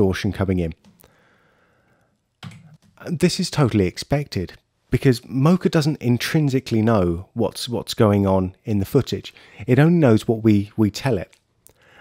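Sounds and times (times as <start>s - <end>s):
faint exhale: 1.1s - 2.1s, 11.8s - 12.0s.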